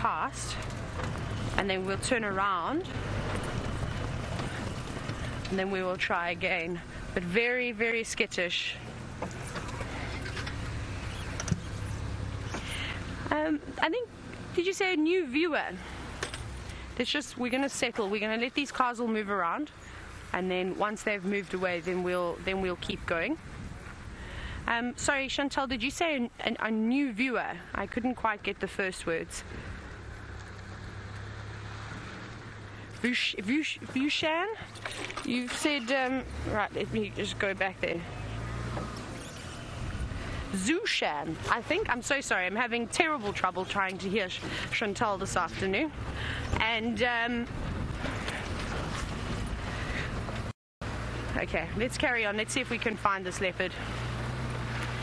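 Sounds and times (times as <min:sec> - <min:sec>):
vehicle engine idling: 0:00.0 - 0:14.7, 0:27.6 - 0:55.0.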